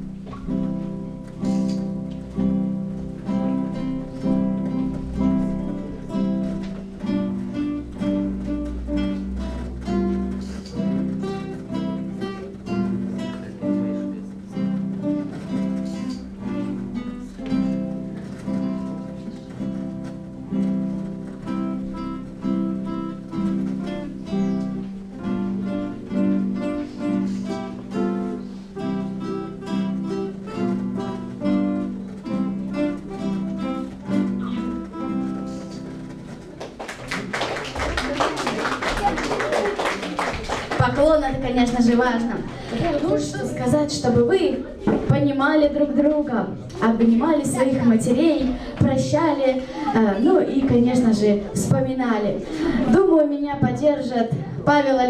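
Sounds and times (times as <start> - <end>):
nylon-string guitars playing: 0.0 - 55.0.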